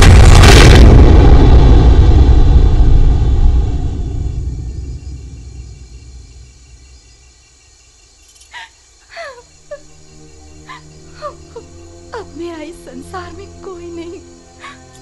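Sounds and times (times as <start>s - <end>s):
deep low rumble of crash: 0.0s - 6.8s.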